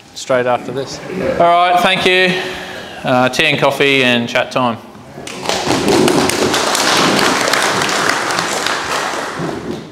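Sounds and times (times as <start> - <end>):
audience applauding: 5.4 - 9.9.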